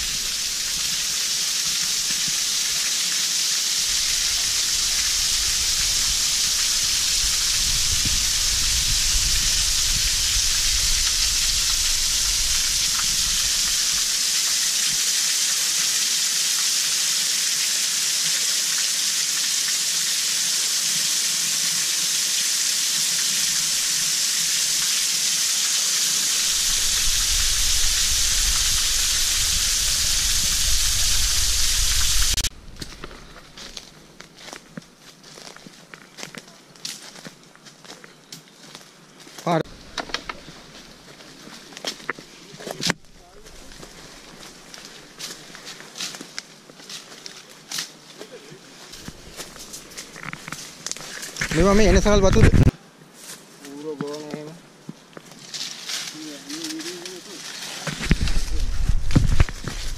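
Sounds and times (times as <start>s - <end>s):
waterfall pouring: 0.0s - 32.5s, 48.9s - 52.6s.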